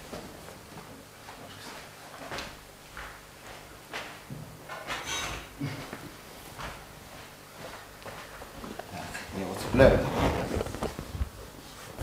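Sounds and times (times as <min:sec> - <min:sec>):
clothing rustling: 0:07.6 - 0:12.0.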